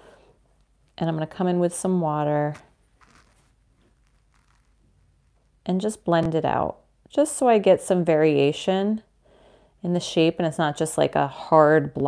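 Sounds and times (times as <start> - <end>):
faint soft rustles: 2.4 - 5.7.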